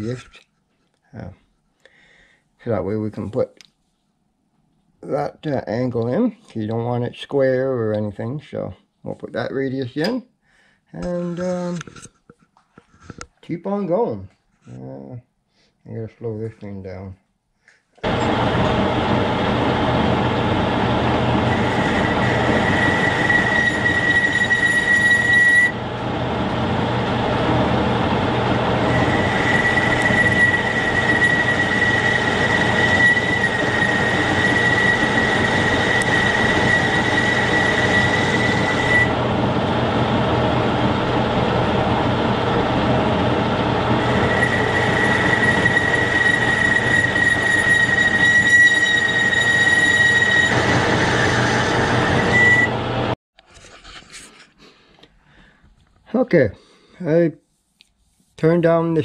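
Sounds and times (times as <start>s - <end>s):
metal lathe running: 18.1s - 53.1s
high-pitched cutting squeal: 20.4s - 25.9s, 27.5s - 39.2s, 43.8s - 52.9s.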